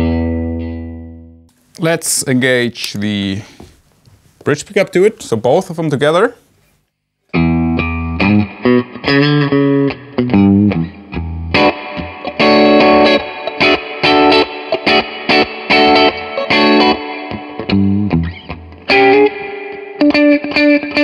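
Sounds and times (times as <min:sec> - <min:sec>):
electric guitar through amp: 0:07.3 - 0:21.0.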